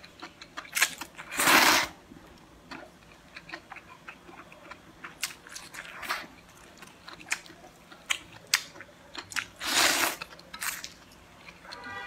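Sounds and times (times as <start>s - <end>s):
chewing noodles: 2.7s - 11.8s.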